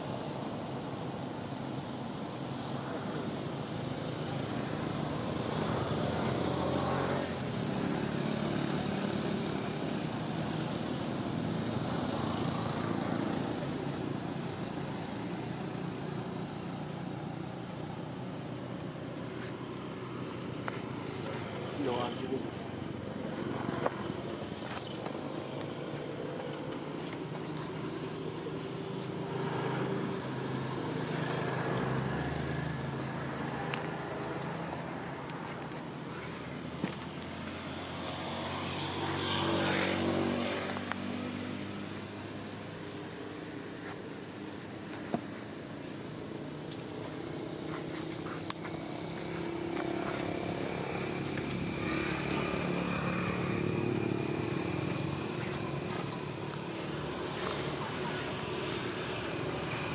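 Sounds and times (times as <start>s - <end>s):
motor vehicle noise: 0.0s - 59.9s.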